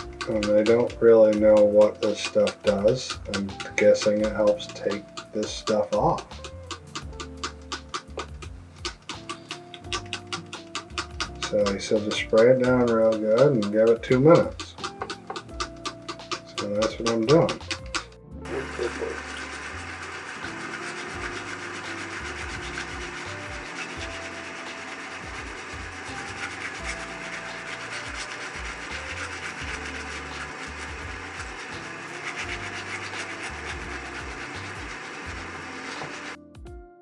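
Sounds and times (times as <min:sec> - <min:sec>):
brush scrubbing plastic: 0:00.0 - 0:36.4
running tap water: 0:00.0 - 0:36.4.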